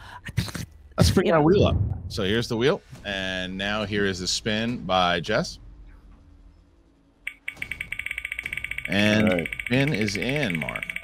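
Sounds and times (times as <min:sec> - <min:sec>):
digital spinning wheel ticks: 0:07.3 - 0:11.0.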